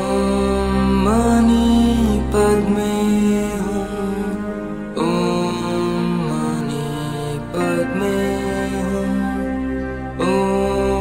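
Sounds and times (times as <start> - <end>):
person chanting a mantra: 0.0 - 11.0
steady low drone: 0.0 - 11.0.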